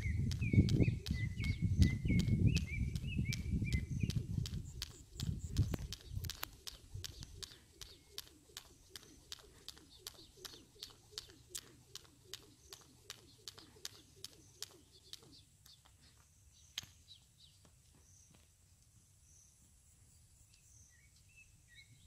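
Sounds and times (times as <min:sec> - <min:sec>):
skipping rope slapping concrete: 0:00.0 - 0:16.0.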